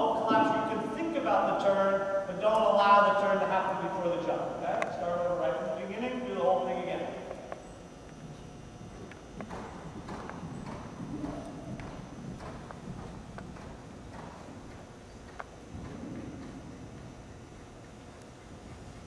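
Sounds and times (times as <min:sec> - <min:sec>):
horse hoofbeats on sand: 0:08.2 - 0:19.0.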